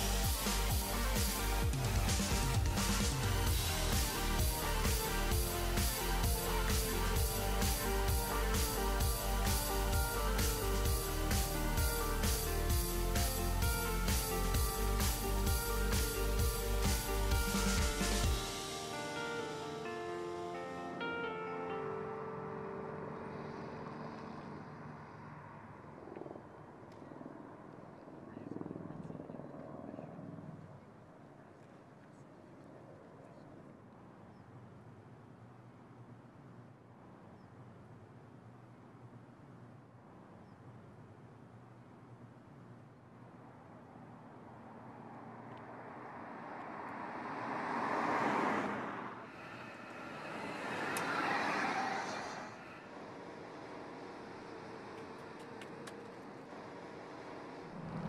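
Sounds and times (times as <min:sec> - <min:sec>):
car tyre and road noise: 0:23.2 - 0:26.8, 0:34.6 - 0:58.0.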